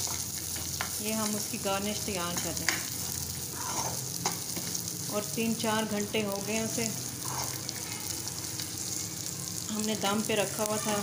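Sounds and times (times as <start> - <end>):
nuts sizzling in a pan: 0.0 - 11.0
spoon stirring in metal pan: 2.3 - 2.9.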